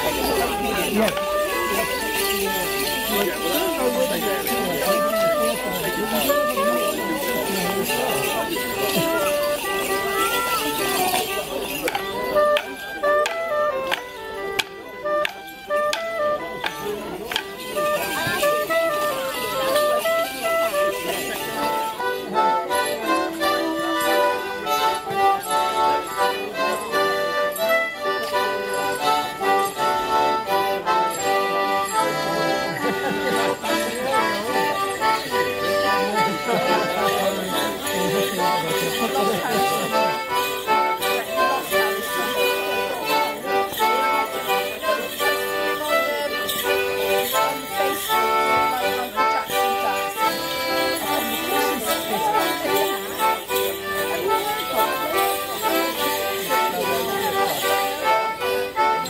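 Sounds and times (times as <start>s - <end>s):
accordion folk dance tune: 0.0s - 59.0s.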